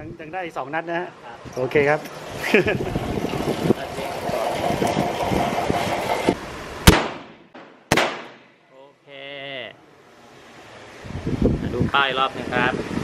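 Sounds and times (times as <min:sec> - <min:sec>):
steady rushing noise: 0:02.2 - 0:08.3
revolver shots echoing: 0:06.9 - 0:08.5.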